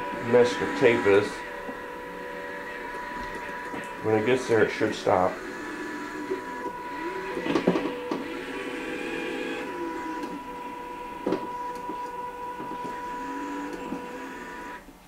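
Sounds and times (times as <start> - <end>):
small electric motors whining: 0.0 - 14.9.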